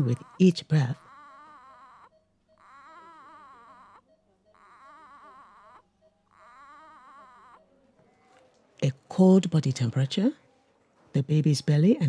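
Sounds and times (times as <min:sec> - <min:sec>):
newborn crying faintly: 0:00.0 - 0:08.6.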